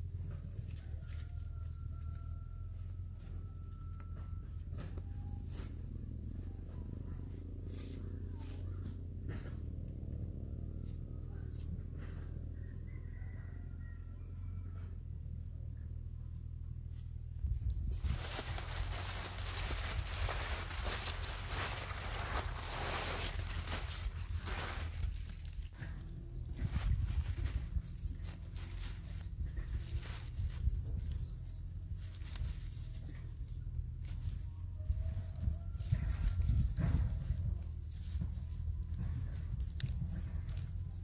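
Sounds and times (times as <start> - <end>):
steady low rumble: 0.0 - 12.9, 14.7 - 41.0
plastic sack rustling and crinkling: 17.6 - 34.4.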